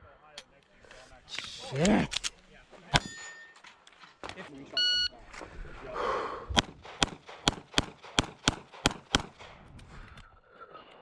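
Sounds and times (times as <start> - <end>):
bullet hitting ringing steel target: 2.9 - 3.6.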